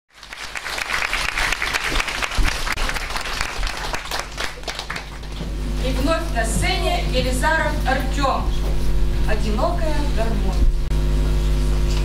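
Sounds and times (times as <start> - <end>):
audience applauding: 0.1 - 5.7.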